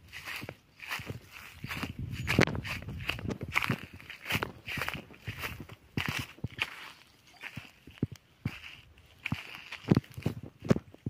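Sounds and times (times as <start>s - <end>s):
footsteps on dry grass: 0.0s - 11.0s.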